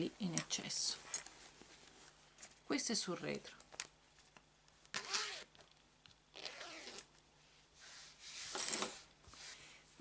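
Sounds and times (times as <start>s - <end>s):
fabric with zipper rustling: 5.0s - 5.5s, 6.3s - 7.1s.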